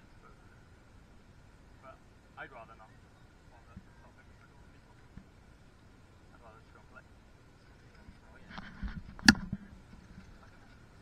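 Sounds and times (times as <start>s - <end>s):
faint rustling: 7.5s - 11.0s.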